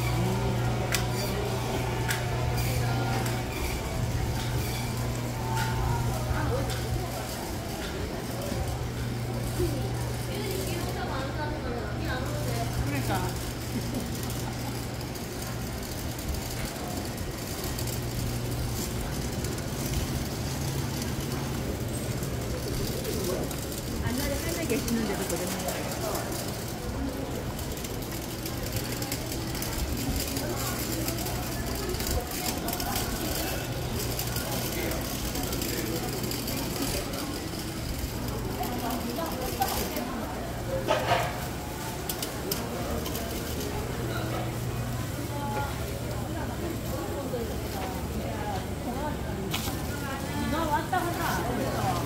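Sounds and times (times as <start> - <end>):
murmur of voices: 0.0 - 52.0
passers-by voices: 0.0 - 52.0.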